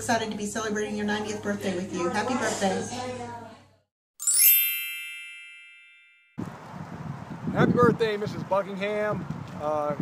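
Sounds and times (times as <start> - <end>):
chime with high ringing tones: 4.2 - 6.4.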